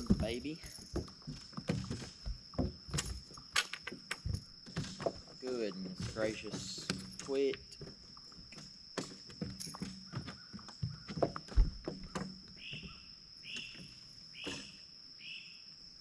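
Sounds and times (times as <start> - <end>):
bird calling: 12.0 - 15.7.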